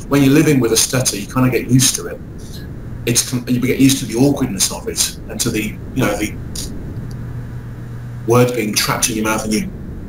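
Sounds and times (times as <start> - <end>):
man speaking: 0.0 - 6.7, 8.2 - 9.7
low room rumble: 0.0 - 10.0
breath hiss: 2.2 - 3.4.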